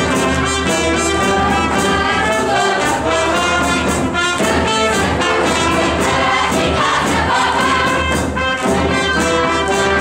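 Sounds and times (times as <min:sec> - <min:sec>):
brass band playing folk dance tune: 0:00.0 - 0:10.0
young voices singing: 0:01.2 - 0:03.7, 0:04.4 - 0:08.9.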